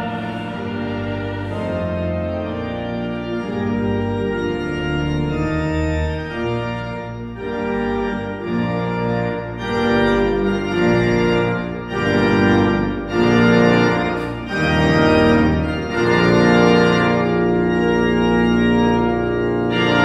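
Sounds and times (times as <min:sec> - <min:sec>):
pipe organ playing sustained chords: 0:00.0 - 0:20.0.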